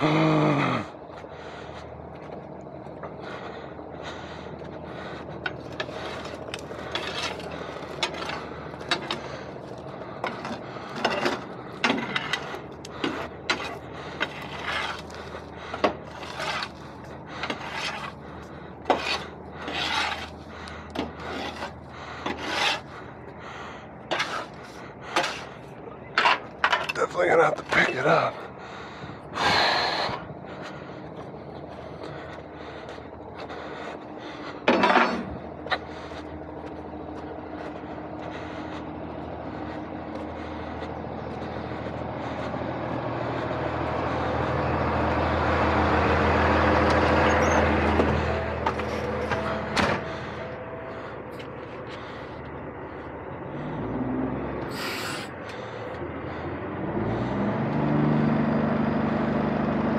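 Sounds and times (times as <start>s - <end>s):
steel bar scraping mud off metal: 5.8s - 9.2s, 13.0s - 15.2s, 15.8s - 18.2s, 18.8s - 20.4s, 21.0s - 22.9s, 24.1s - 24.5s, 25.1s - 25.6s.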